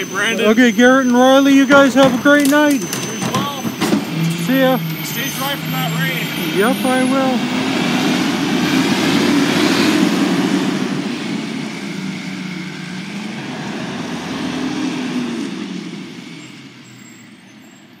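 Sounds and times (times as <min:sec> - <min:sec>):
garbage truck engine revving: 0:00.0 - 0:18.0.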